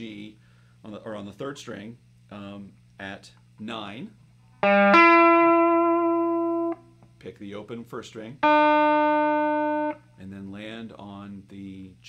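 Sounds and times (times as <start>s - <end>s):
electric guitar note ringing: 4.6s - 6.9s, 8.4s - 10.2s.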